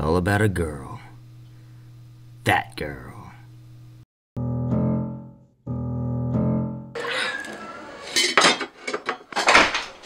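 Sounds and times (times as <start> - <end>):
metal knives clattering: 7.0 - 10.0.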